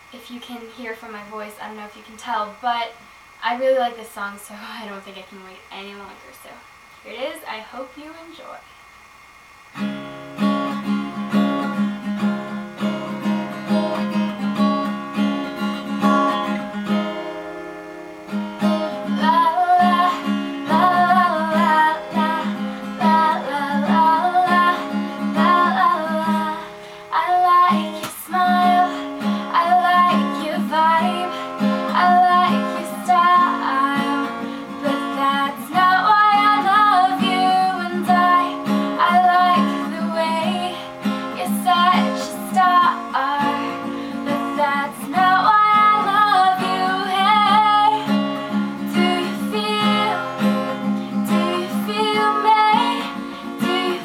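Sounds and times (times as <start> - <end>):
acoustic guitar playing: 0.0 - 6.5, 9.5 - 54.0
woman singing: 0.2 - 8.6, 18.7 - 54.0.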